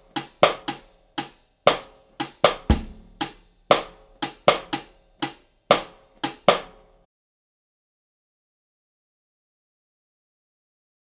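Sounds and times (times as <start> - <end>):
drum kit syncopated rhythm: 0.0 - 7.0.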